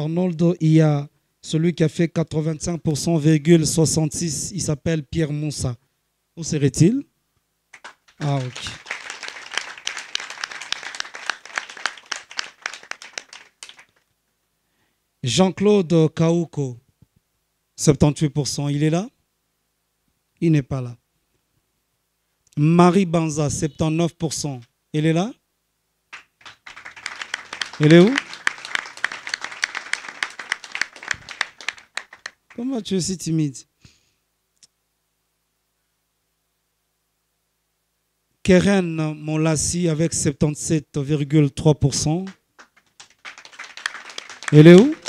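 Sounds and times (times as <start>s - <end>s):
audience clapping: 7.7s - 14.1s, 26.1s - 32.8s, 42.1s - 45.0s
crowd applauding: 7.8s - 14.0s, 26.1s - 32.7s, 42.2s - 45.0s.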